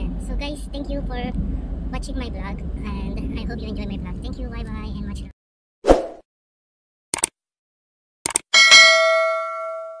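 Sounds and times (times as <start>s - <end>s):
notification bell ding: 8.6s - 10.0s.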